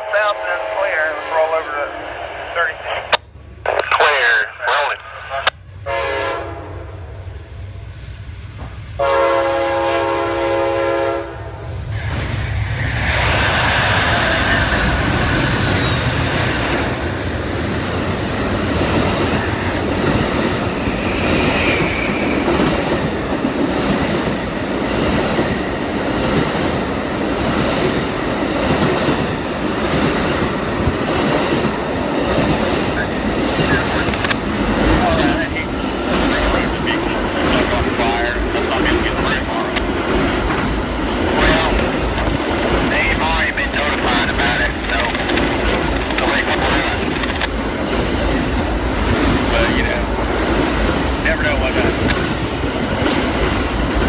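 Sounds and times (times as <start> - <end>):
train rumbling past: 5.1 - 54.0
train horn blasts: 5.8 - 7.1, 9.0 - 11.6.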